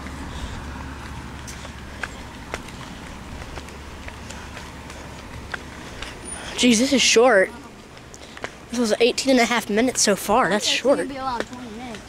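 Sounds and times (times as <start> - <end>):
footsteps on paved path: 0.0 - 12.0.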